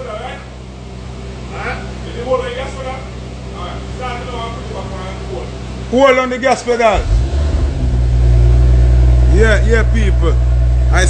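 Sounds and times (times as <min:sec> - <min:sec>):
car engine revving: 0:06.8 - 0:11.0.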